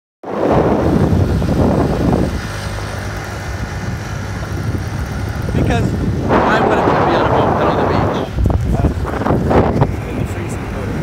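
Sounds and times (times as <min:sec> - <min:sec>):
moped engine running: 0:01.0 - 0:09.5.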